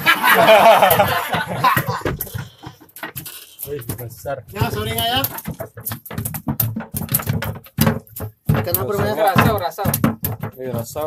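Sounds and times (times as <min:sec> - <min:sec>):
fish flapping on wooden deck: 0:00.0 - 0:11.0.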